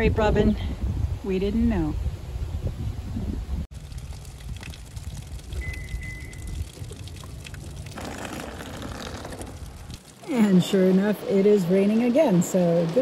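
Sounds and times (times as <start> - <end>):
light rain on pavement: 3.7 - 12.2.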